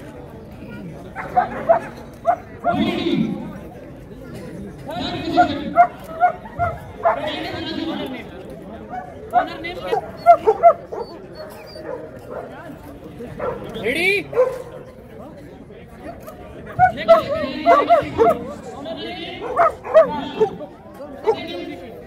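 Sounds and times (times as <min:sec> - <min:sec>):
people talking: 0:00.0 - 0:22.0.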